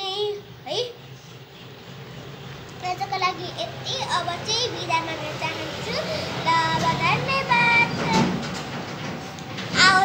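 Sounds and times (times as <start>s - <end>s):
girl singing: 2.8s - 8.5s, 9.7s - 10.0s.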